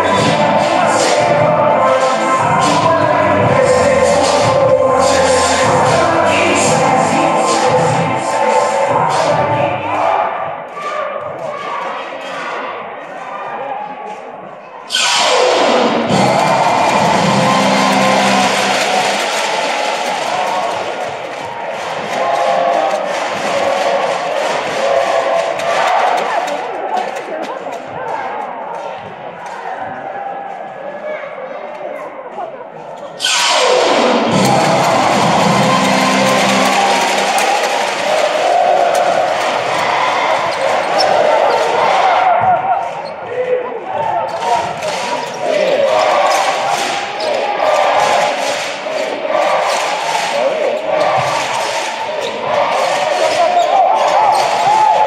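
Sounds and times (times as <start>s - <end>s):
music: 0.0s - 10.2s, 15.0s - 26.1s, 33.2s - 42.1s
arena crowd cheering: 0.0s - 14.3s, 14.9s - 32.4s, 33.1s - 55.0s
arena crowd noise: 0.0s - 55.0s
voices: 0.0s - 55.0s.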